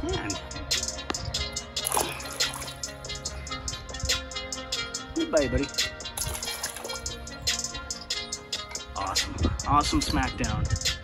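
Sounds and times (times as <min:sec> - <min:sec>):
background music: 0:00.0 - 0:11.0
small water splashes: 0:01.8 - 0:02.8, 0:06.2 - 0:07.1.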